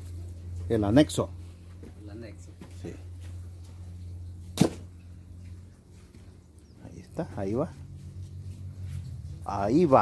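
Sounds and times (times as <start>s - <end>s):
steady low hum: 0.0s - 10.0s
sharp thump: 4.6s - 4.9s.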